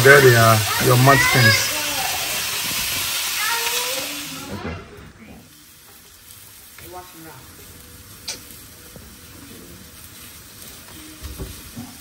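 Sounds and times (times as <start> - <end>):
bacon sizzling in a skillet: 0.0 - 12.0.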